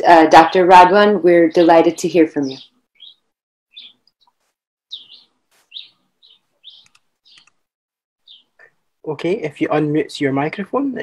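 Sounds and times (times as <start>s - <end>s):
faint bird chirps: 2.4s - 7.6s, 8.2s - 8.7s.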